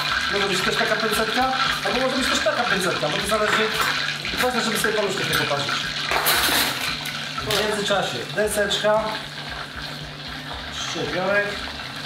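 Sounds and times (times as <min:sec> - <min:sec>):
food deep-frying in oil: 0:00.0 - 0:12.0.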